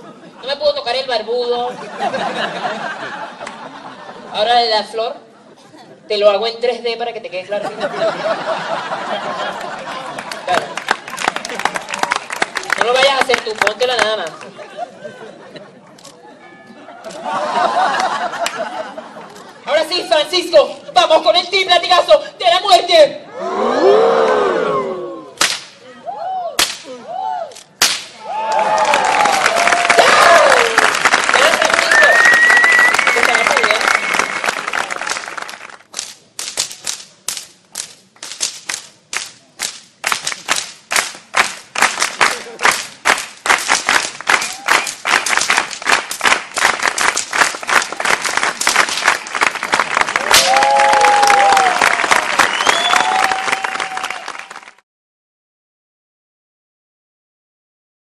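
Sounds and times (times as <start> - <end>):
crowd cheering and applauding: 8.5 - 14.2, 28.2 - 36.0, 39.6 - 54.8
rhythmic clapping in unison: 9.4 - 14.6, 17.8 - 18.7, 27.8 - 54.8
whip cracks: 25.4 - 25.8, 26.6 - 28.2, 35.9 - 49.3, 50.2 - 50.7
whistles: 31.9 - 34.6, 52.3 - 54.2.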